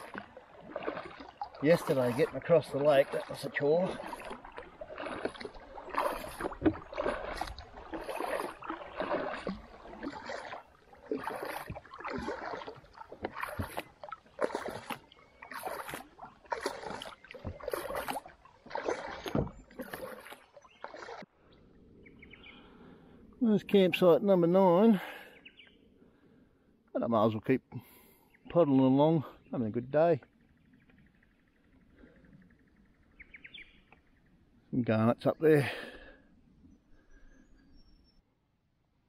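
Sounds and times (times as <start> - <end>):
kayak paddle splashing water: 0.0 - 21.3.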